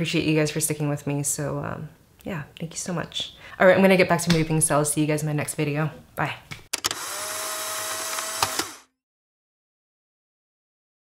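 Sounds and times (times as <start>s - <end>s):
camera motor whirring: 6.8s - 8.9s
camera click: 7.8s - 8.8s.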